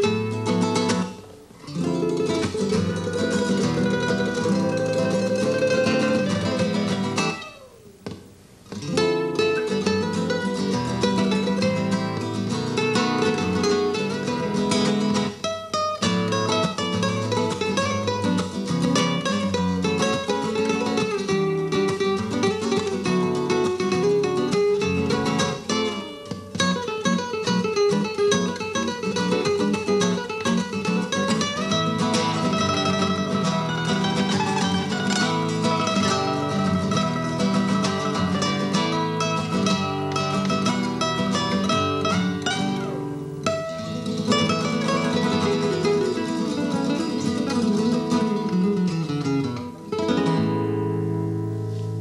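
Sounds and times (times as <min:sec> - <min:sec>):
nylon-string guitars duet: 0:00.0 - 0:52.0.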